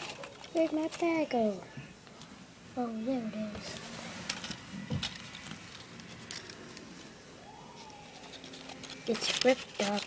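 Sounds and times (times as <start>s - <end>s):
faint rising and falling tone: 6.0s - 9.1s.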